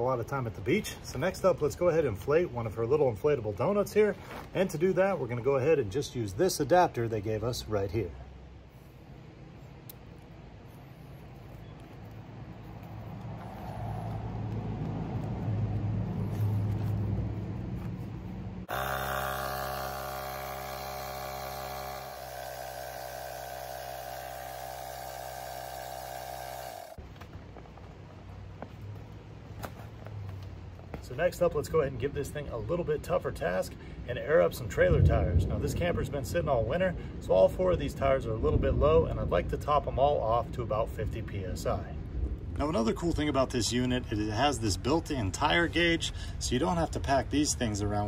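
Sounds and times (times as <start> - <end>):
air compressor running: 13.4 - 14.6, 18.2 - 27.0.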